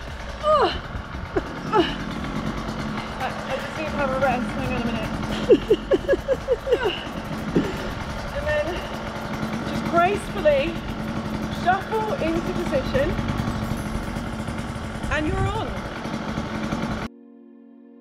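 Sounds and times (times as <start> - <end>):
low hum: 0.0 - 17.1.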